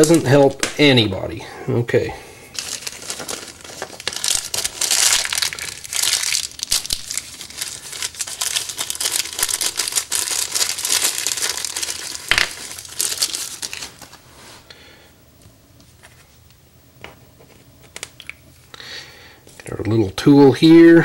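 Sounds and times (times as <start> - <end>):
plastic bag crinkling: 2.5 - 14.6.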